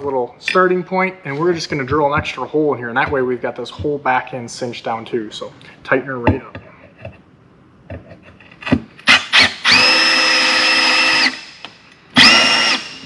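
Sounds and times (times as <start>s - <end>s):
cordless drill whining: 9.1s - 11.6s, 12.2s - 13.0s.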